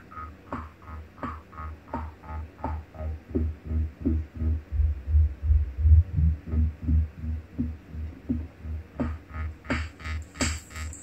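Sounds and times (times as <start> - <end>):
electronic dance music: 0.0 - 11.0
hissy hi-hat hits: 0.0 - 11.0
falling bass blips: 0.1 - 9.8
deep kick and bass pulse: 0.2 - 10.6.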